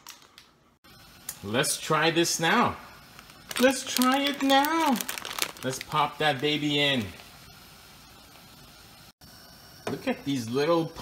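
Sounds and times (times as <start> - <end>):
water boiling in a pan: 1.0 - 11.0.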